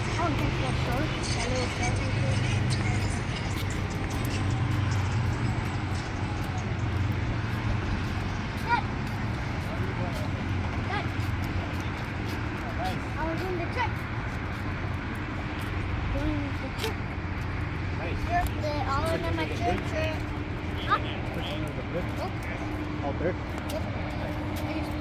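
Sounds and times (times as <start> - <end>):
distant indistinct voices: 0.0 - 25.0
low outdoor rumble: 0.0 - 25.0.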